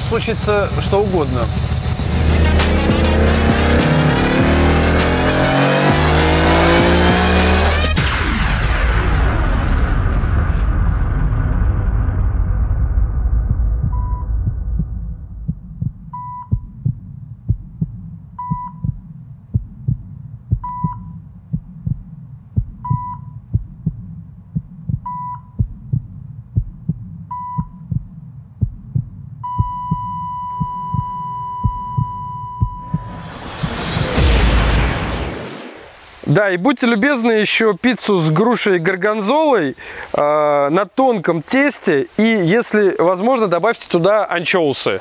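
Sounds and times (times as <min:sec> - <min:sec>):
rising whoosh: 0:01.5 - 0:16.9, 0:32.5 - 0:36.4
heartbeat thumping: 0:02.0 - 0:07.8, 0:10.6 - 0:34.8
flatline tone: 0:09.9 - 0:35.9
heart monitor beeps: 0:13.5 - 0:33.8.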